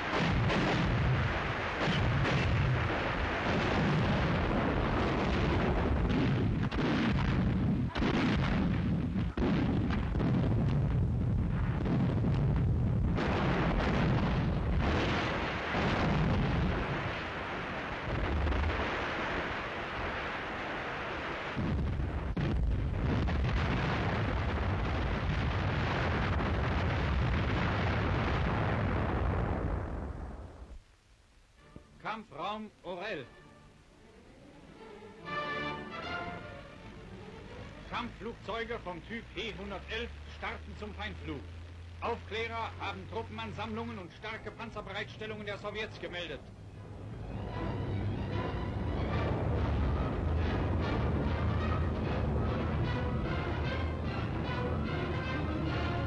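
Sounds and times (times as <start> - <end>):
artillery barrage: 0.0 - 30.7.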